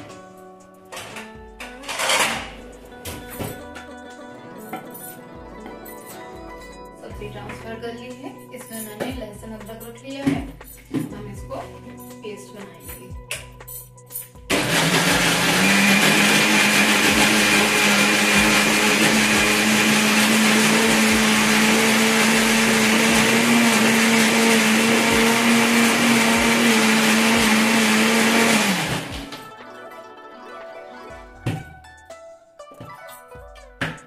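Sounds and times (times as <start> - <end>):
electric mixer grinder motor: 14.5 - 29.4.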